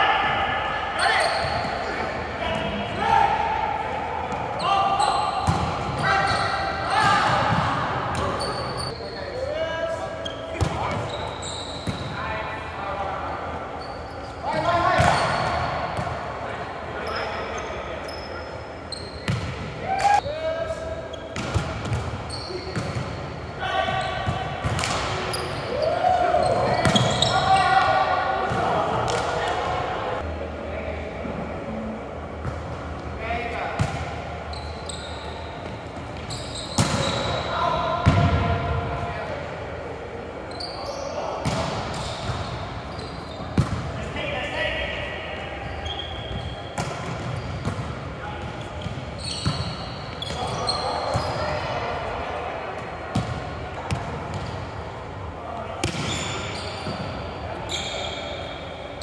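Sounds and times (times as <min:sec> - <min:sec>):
volleyball struck with slaps: 0:24.3 - 0:25.2, 0:36.8 - 0:37.2, 0:55.8 - 0:56.2
players shouting: 0:25.3 - 0:30.2.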